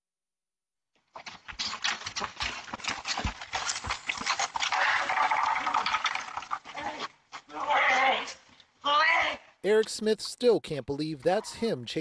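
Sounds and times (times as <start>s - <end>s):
man shouting: 7.5s - 9.5s.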